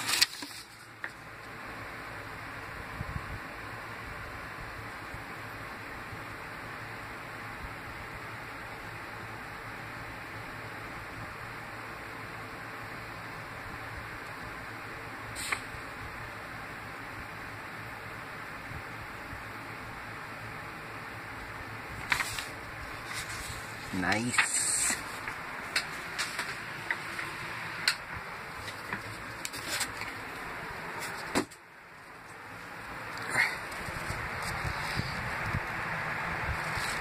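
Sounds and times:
steady background hiss: 0.0s - 37.0s.

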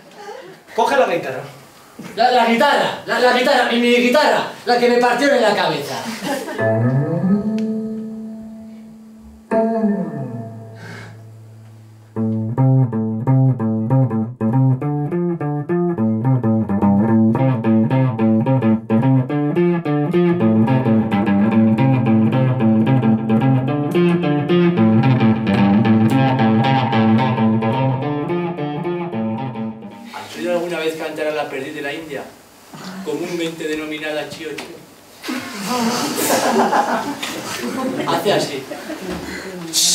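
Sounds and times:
fast picked guitar pattern: 6.6s - 30.1s
strummed guitar chord: 6.6s - 30.1s.

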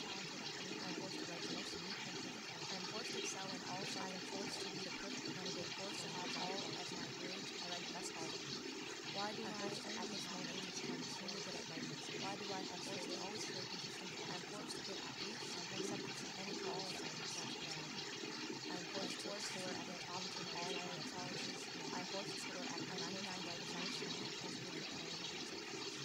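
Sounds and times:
faint overlapping voices: 0.0s - 26.0s.

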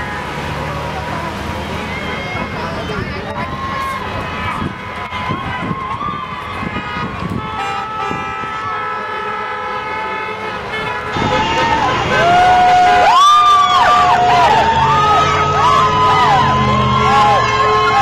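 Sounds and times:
babble of voices: 0.6s - 6.0s, 11.2s - 18.0s
car horns honking: 6.6s - 18.0s
people shouting: 11.1s - 18.0s.

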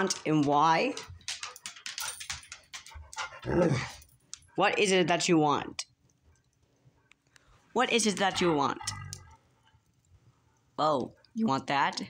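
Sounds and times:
dog claws clicking on hardwood: 0.0s - 3.4s.

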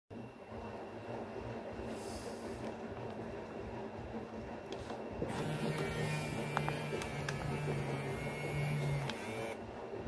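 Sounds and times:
faint hum: 0.1s - 10.0s.

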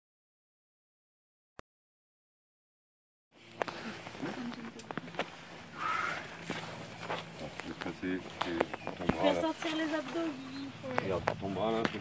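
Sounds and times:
faint voices outdoors: 3.4s - 12.0s.

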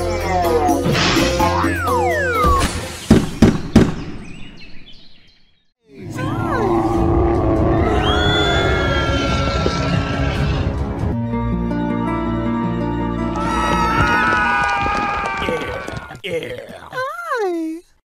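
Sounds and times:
cartoon music: 0.0s - 2.9s.

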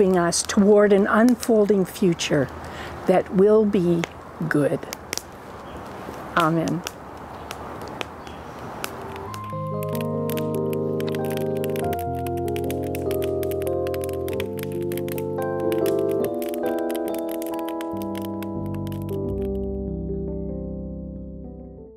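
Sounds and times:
faint outdoor hiss: 0.0s - 19.7s
slow keyboard chords: 8.9s - 21.9s.

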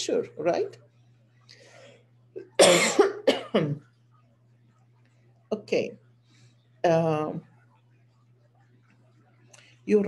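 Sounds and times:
faint breath: 1.4s - 2.1s, 6.2s - 6.8s
woman coughing: 2.4s - 3.8s.

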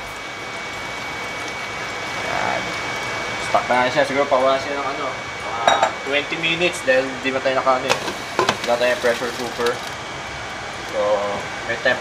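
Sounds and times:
water pouring into pot: 0.0s - 5.5s, 7.9s - 11.9s.

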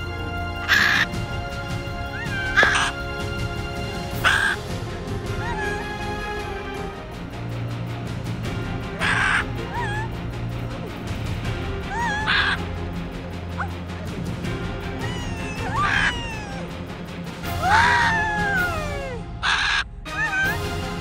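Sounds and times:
macaw squawking: 0.0s - 1.3s, 2.0s - 3.3s, 4.0s - 6.4s, 8.8s - 10.2s, 11.9s - 12.8s, 15.0s - 16.8s, 19.4s - 20.8s
background music: 0.0s - 21.0s.

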